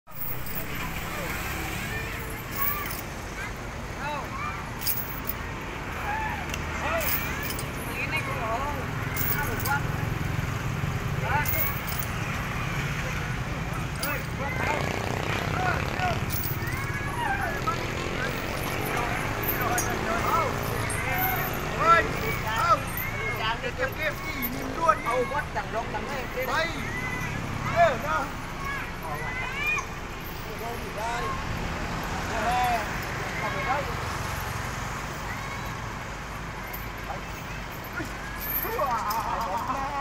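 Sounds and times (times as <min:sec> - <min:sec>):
people's voices: 0:00.1 - 0:40.0
traffic rumble: 0:00.1 - 0:40.0.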